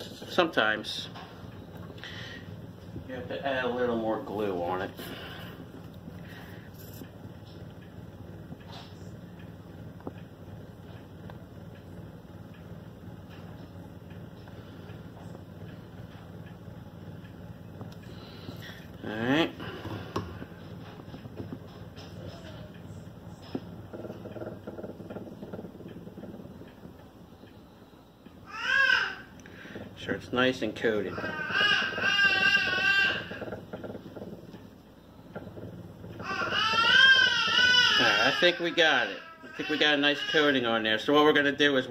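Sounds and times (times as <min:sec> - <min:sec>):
phonograph turntable hum: 0:00.0 - 0:41.9
child crying: 0:28.5 - 0:29.2, 0:31.2 - 0:33.4, 0:36.2 - 0:40.5.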